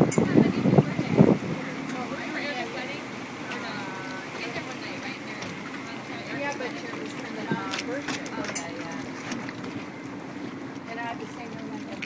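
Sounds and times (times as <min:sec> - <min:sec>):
wind on microphone: 0:00.0 - 0:02.9
boat engine humming: 0:00.0 - 0:12.0.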